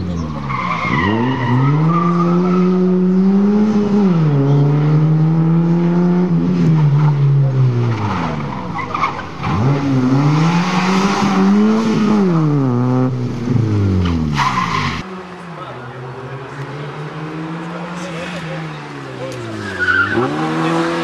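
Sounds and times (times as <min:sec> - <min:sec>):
car engine revving: 0:00.0 - 0:21.0
tyre squeal: 0:19.5 - 0:20.5.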